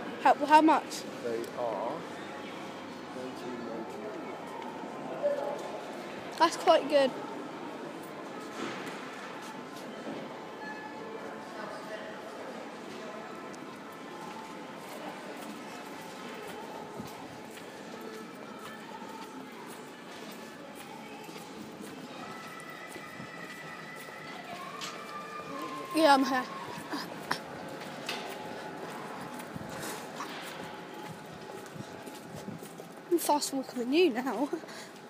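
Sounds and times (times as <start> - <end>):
distant shoppers' voices: 0.0 - 35.0.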